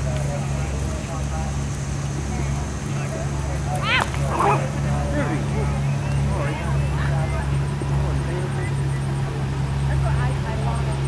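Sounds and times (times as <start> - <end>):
faint distant voices: 0.0 - 11.0
steady low hum: 0.0 - 11.0.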